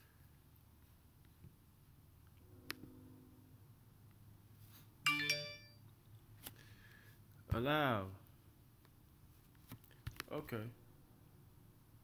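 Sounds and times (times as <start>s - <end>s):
phone notification chime: 5.1s - 5.8s.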